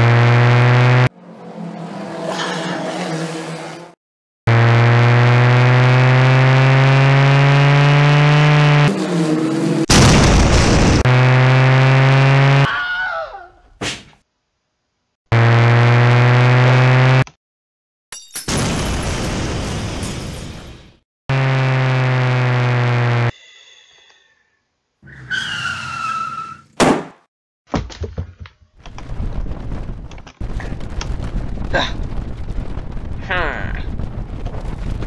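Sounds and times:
race car engine running: 0.0s - 3.9s
loud crash: 9.9s - 11.1s.

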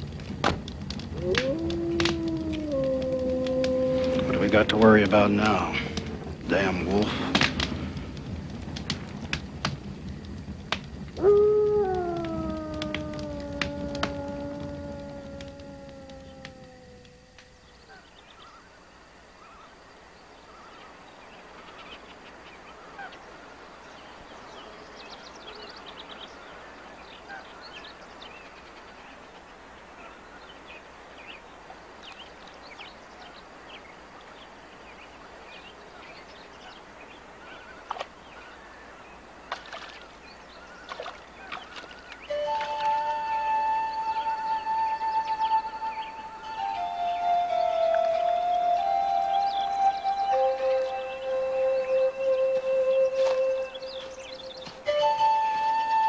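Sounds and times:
birds chirping: 0.0s - 56.0s
wolf howling: 0.9s - 7.7s, 11.2s - 18.1s, 42.3s - 56.0s.

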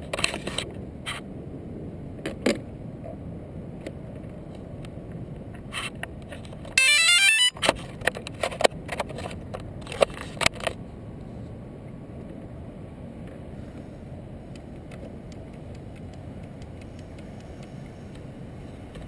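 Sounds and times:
short beeps and clicks: 6.8s - 7.6s.

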